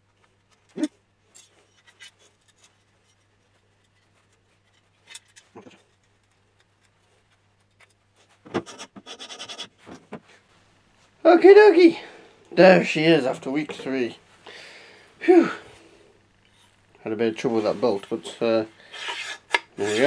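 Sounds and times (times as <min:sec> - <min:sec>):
light clicks and scrapes: 0:00.1 - 0:10.5.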